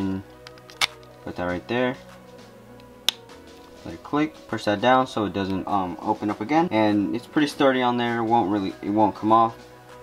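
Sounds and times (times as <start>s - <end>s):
faint background music: 0.0s - 10.0s
plastic mount click: 0.4s - 1.1s.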